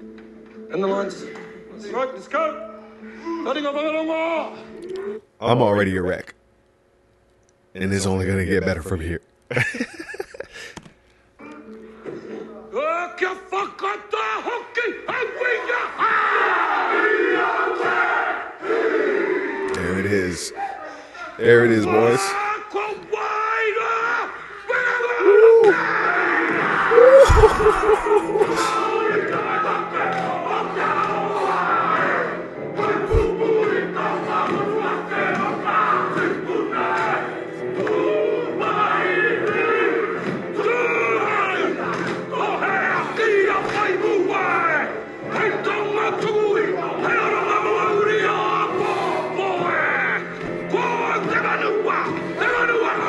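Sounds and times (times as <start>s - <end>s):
low thump: 27.2s - 28.0s
men chanting in unison: 28.3s - 53.0s.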